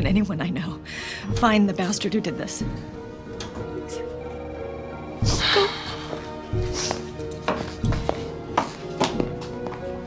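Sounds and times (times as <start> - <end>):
soft background music: 0.0 - 10.0
footsteps on hard floor: 5.2 - 10.0.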